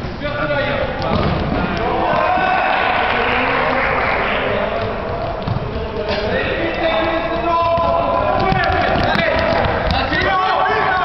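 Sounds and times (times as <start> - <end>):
ball thudding on court floor: 1.0 - 2.2
players shouting in a hall: 1.5 - 8.8.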